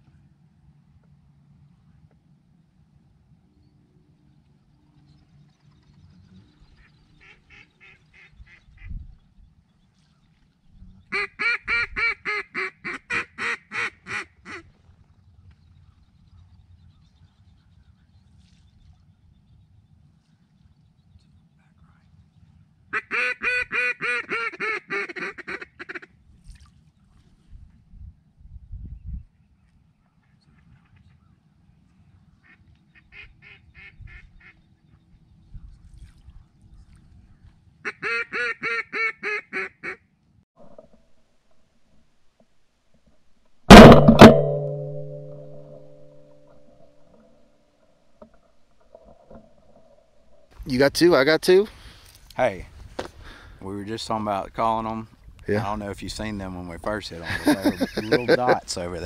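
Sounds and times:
duck call rapid quacks: 0:11.1 - 0:14.6, 0:23.0 - 0:26.1, 0:37.9 - 0:40.0.

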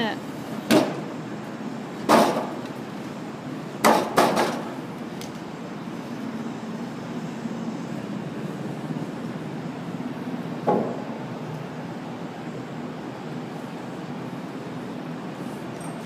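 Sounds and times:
steady background noise: 0:00.0 - 0:16.0
wooden timbers knocking together: 0:02.1 - 0:02.6, 0:03.8 - 0:04.6.

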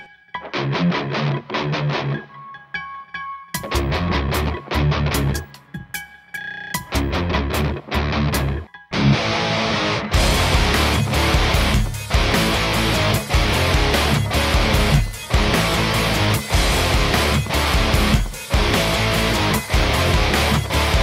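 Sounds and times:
heavy electric guitar riffing: 0:00.4 - 0:02.3, 0:03.6 - 0:05.4, 0:06.9 - 0:21.0
band with drums and cymbals: 0:10.2 - 0:21.0.

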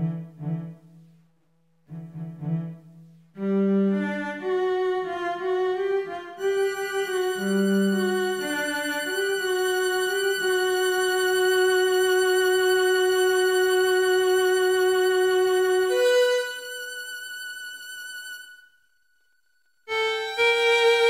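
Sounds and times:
solo cello: 0:00.0 - 0:01.1, 0:01.8 - 0:18.4.

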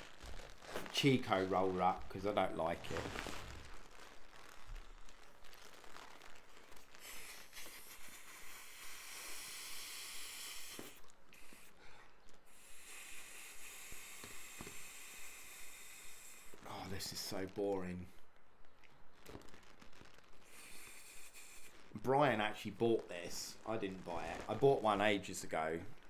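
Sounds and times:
foil crinkling: 0:00.0 - 0:08.1
breath blowing up balloon: 0:02.8 - 0:03.8, 0:06.4 - 0:16.9, 0:20.4 - 0:22.3.

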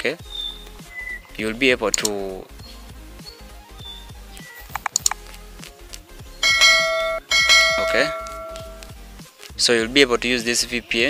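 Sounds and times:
soft background music: 0:00.0 - 0:11.0
mouse click: 0:04.7 - 0:05.2
bright bell chime: 0:06.4 - 0:08.8.

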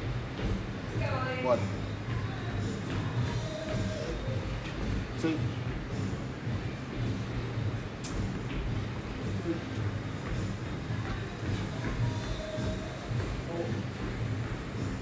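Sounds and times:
music: 0:00.0 - 0:15.0.

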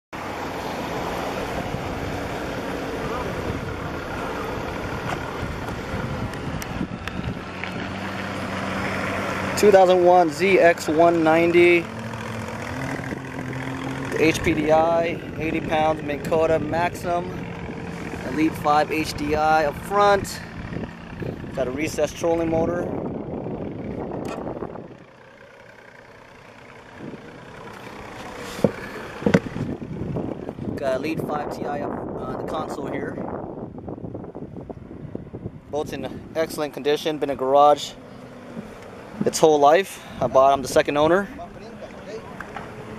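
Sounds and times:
low outdoor rumble: 0:00.2 - 0:42.9
wind buffeting microphone: 0:01.4 - 0:09.1, 0:11.5 - 0:25.1, 0:26.9 - 0:36.8
sharp knocks: 0:28.6 - 0:29.5.

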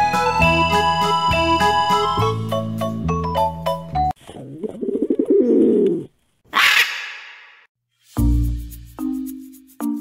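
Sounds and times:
pigeon cooing: 0:04.3 - 0:06.9.

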